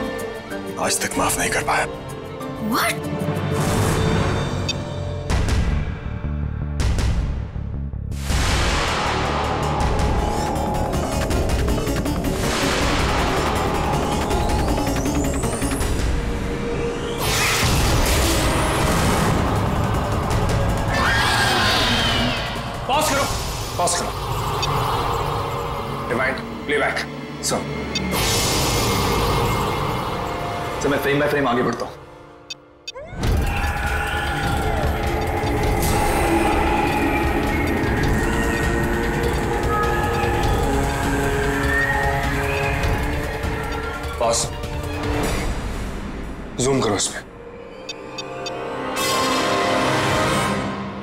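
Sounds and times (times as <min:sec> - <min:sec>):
dramatic background music: 0:00.0 - 0:51.0.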